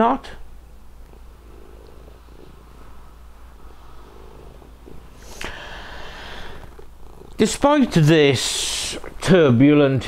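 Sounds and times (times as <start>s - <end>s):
cat purring: 0.8s - 9.3s.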